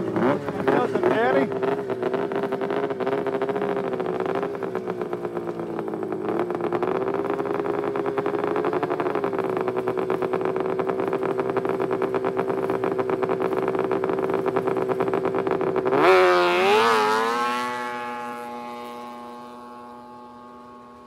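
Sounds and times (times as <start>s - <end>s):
snowmobile engine fast idle: 0.0s - 21.0s.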